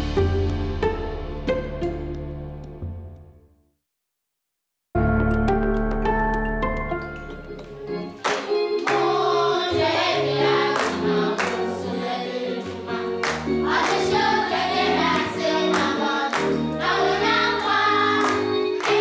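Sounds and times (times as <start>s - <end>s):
instrumental accompaniment with beat: 5.0s - 19.0s
children singing together: 8.4s - 19.0s.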